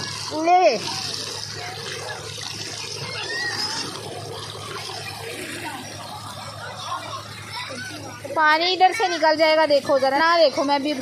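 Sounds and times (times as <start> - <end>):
faint voices: 0.0 - 11.0
water pouring into channel: 0.0 - 11.0.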